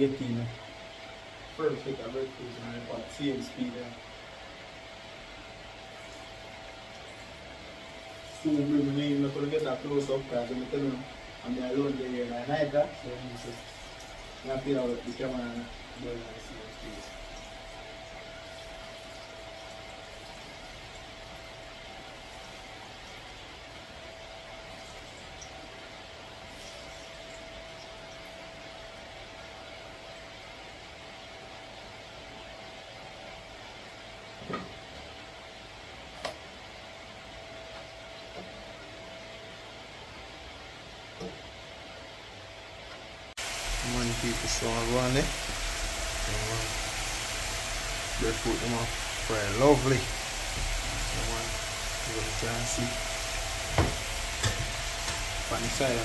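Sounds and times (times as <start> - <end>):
faint steady whine: 0.0 - 56.0
food sizzling in oil: 43.4 - 56.0.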